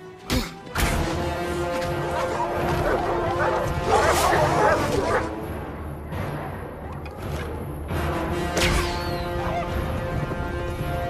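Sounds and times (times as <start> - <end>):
orchestral music: 0.0 - 11.0.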